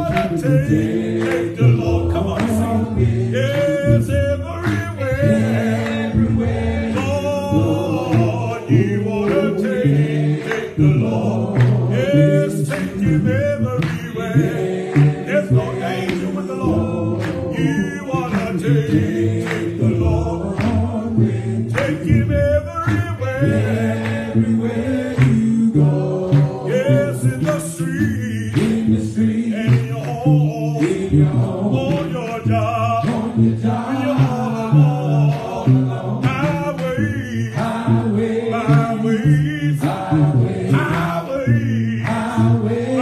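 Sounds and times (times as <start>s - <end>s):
backing voices sustaining chords: 0.0s - 43.0s
man singing gospel: 0.0s - 43.0s.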